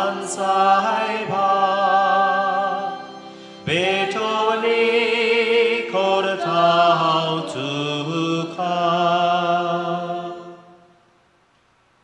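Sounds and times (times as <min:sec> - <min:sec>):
man chanting: 0:03.7 - 0:10.1.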